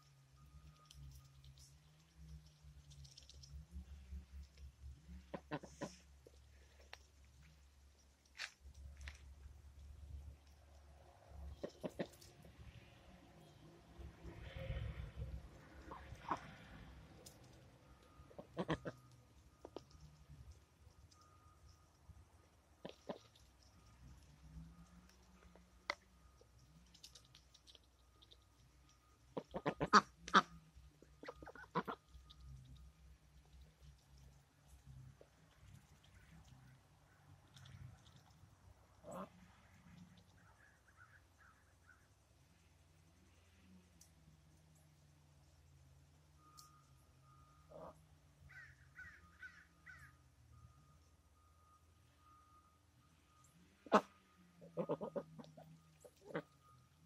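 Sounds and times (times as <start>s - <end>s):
ducks quacking: 5.3s - 6.0s, 18.3s - 19.0s, 29.4s - 30.5s, 31.2s - 32.0s, 39.0s - 39.3s, 53.8s - 56.5s.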